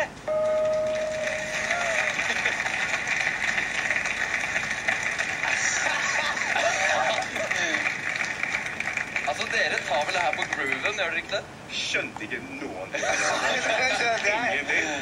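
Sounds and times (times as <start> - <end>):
audience applauding and cheering: 0.4 - 11.0.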